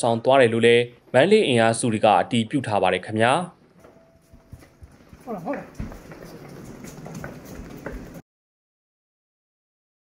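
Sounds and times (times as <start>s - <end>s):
footsteps running on concrete: 4.3s - 8.2s.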